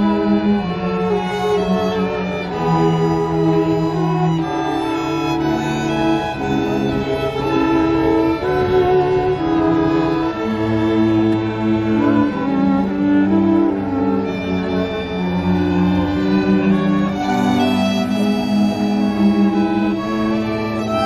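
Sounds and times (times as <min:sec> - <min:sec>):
string orchestra playing: 0:00.0 - 0:21.0.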